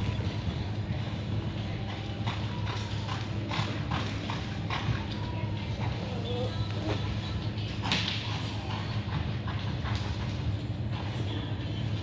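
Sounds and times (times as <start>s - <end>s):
horse hooves galloping on dirt: 0.0s - 12.0s.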